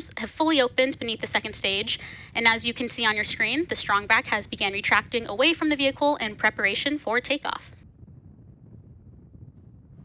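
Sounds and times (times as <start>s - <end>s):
faint low rumble: 0.0s - 10.0s
wind on microphone: 0.0s - 10.0s.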